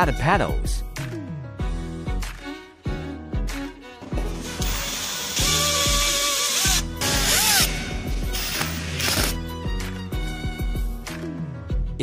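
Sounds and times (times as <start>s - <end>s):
background music: 0.0s - 12.0s
power screwdriver whirring: 4.3s - 9.5s.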